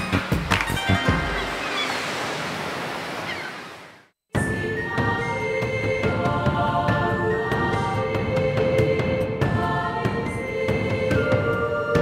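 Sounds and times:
waves breaking: 0.0s - 4.2s.

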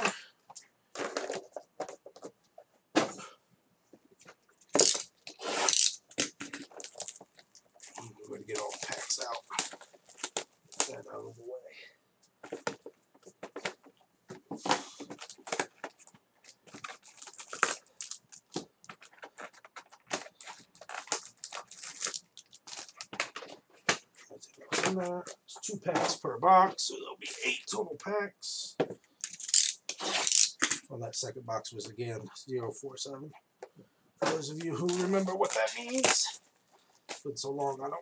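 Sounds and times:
wrapping crackling and crinkling: 0.0s - 2.6s, 4.1s - 11.5s, 12.2s - 25.5s, 29.2s - 30.8s, 34.2s - 38.0s.

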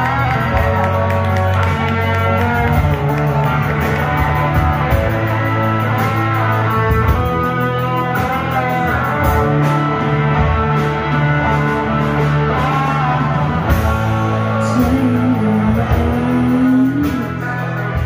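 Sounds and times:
bass guitar: 0.0s - 18.0s
drums: 0.0s - 18.0s
electric guitars: 0.0s - 18.0s.

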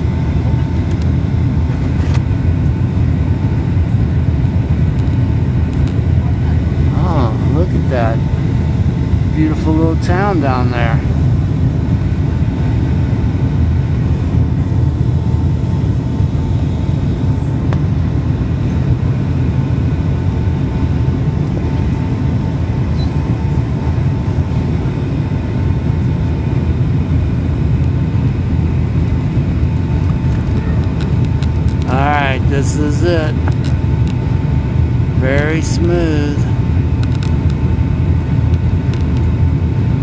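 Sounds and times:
jet engine rumble and rushing air: 0.0s - 40.0s.

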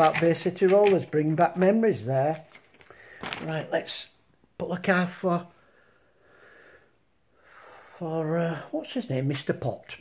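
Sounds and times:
soft breathing: 2.8s - 3.4s, 5.5s - 8.0s.

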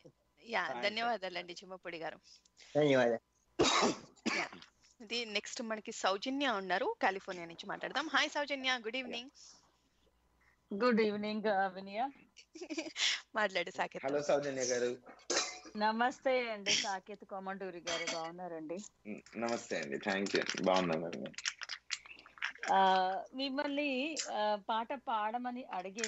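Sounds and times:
person speaking: 0.5s - 1.6s, 2.7s - 3.2s, 6.4s - 9.3s, 12.6s - 26.0s
person coughing: 3.6s - 4.6s, 15.3s - 15.7s, 17.9s - 18.2s.

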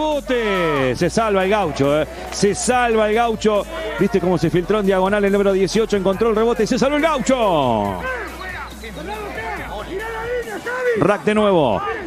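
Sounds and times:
commentator speaking: 0.0s - 12.0s.

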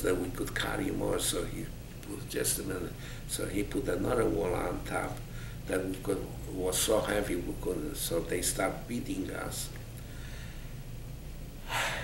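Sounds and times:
man speaking: 0.0s - 9.8s
low room tone hum: 0.0s - 12.0s
man's sharp intake of breath: 3.0s - 3.3s, 5.3s - 5.7s, 10.0s - 10.8s, 11.6s - 12.0s.

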